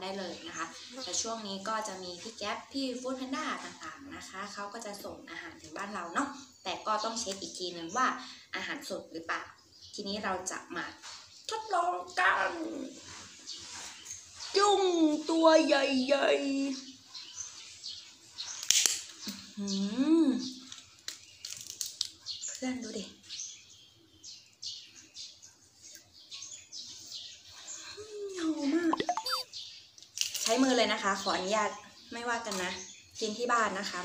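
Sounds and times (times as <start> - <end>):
shrimp shell crackling: 20.7 - 22.5
quick rising chirps: 28.9 - 29.5.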